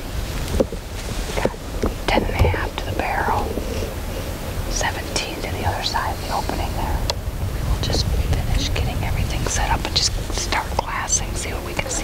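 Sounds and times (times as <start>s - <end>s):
steady low rumble: 0.0s - 12.0s
person whispering: 1.4s - 4.0s, 4.7s - 12.0s.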